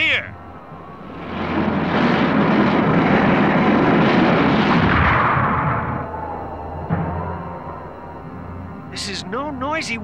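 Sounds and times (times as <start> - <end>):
rocket thrusters rushing rumble: 1.0 - 6.1.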